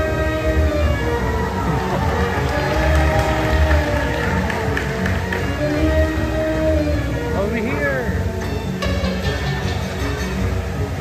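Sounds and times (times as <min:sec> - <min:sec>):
horn-like tone over loudspeakers: 0:00.0 - 0:10.5.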